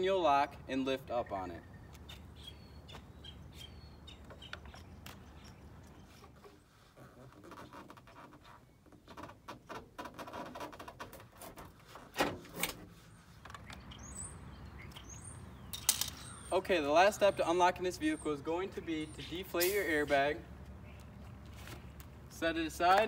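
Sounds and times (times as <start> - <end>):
birds chirping: 0.0 - 7.0, 12.9 - 23.0.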